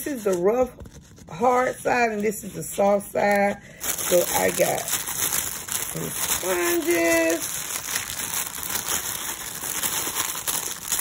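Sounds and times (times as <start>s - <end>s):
plastic packaging crinkling: 3.2s - 11.0s.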